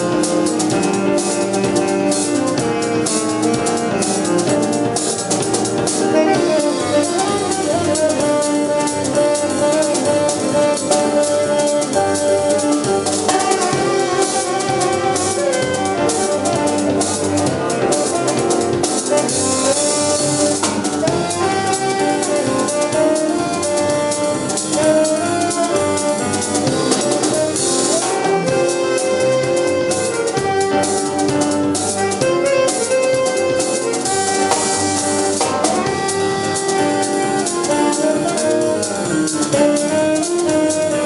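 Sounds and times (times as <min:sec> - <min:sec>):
drum kit: 0:00.0 - 0:41.0
electric bass: 0:00.0 - 0:41.0
jazz band playing: 0:00.0 - 0:41.0
keyboard: 0:00.0 - 0:41.0
saxophone melody: 0:00.0 - 0:41.0.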